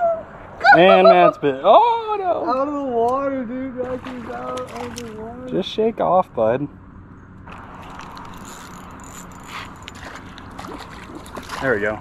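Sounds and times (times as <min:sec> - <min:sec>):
fishing reel gears whirring: 0:07.5 - 0:11.3.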